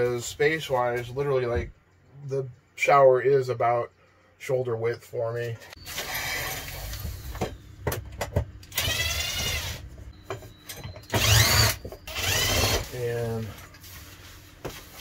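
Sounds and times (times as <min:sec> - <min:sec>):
cordless drill motor whine: 0:08.7 - 0:09.9, 0:11.1 - 0:13.0.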